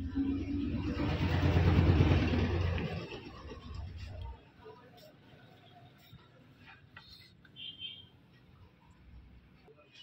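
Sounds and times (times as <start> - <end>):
motor vehicle passing by: 0.0 - 4.2.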